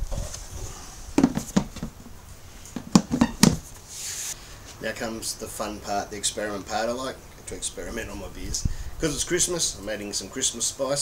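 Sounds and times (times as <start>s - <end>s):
plastic cooler lid knocks: 1.2s - 1.9s.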